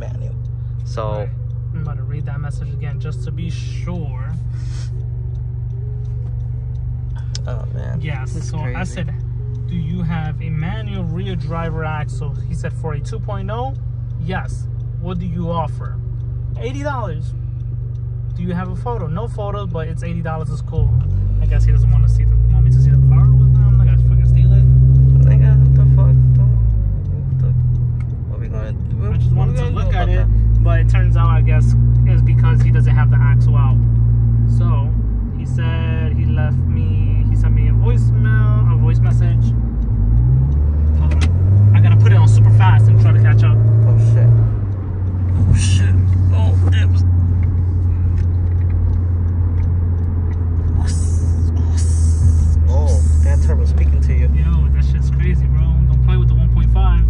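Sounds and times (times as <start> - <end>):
loud low car drone: 0.0 - 57.0
person talking: 7.2 - 15.9, 18.4 - 27.6, 28.3 - 33.8, 45.4 - 47.1, 50.7 - 57.0.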